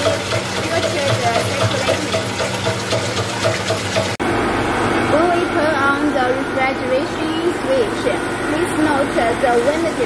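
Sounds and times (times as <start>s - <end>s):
person talking: 0.0s - 2.3s
cooling fan blowing air: 0.0s - 10.0s.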